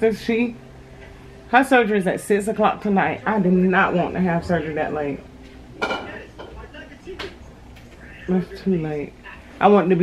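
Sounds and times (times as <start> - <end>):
dishes clinking: 4.9 - 7.5.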